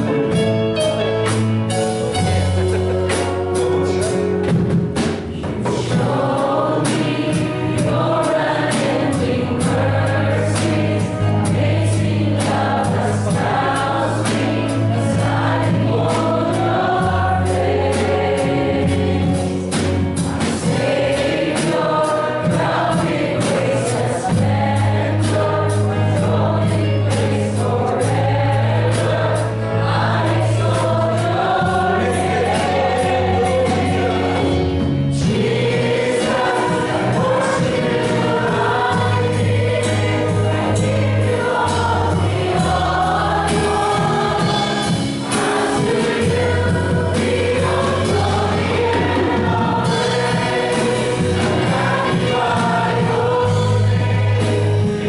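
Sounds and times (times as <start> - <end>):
electric bass long notes: 0.0 - 4.9
worship band playing: 0.0 - 55.0
people singing: 2.2 - 55.0.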